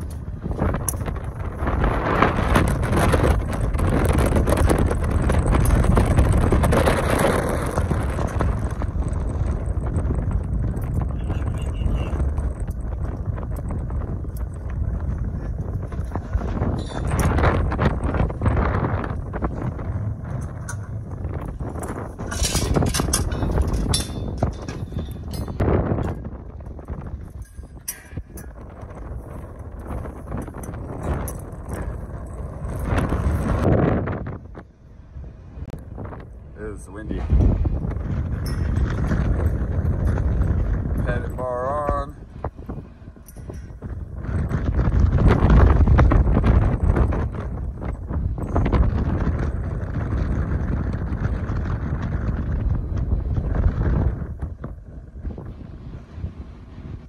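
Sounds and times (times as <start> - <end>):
strong wind buffeting microphone: 0.0 - 57.0
scattered clicks and knocks: 2.4 - 33.7.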